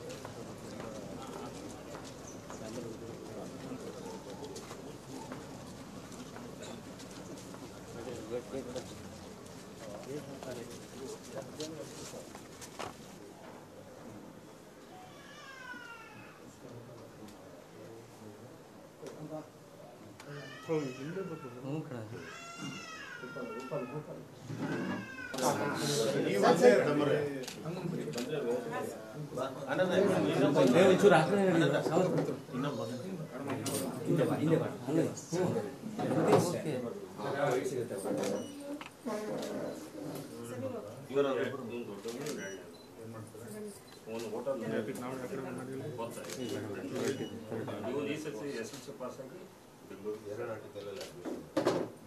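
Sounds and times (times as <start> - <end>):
indistinct chatter: 20.1 - 49.2
people talking at once: 20.2 - 51.1.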